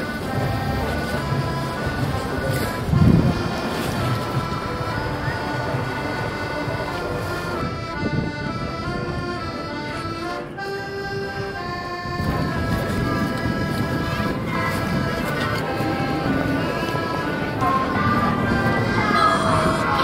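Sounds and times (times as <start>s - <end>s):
accordion playing waltz: 0.0s - 20.0s.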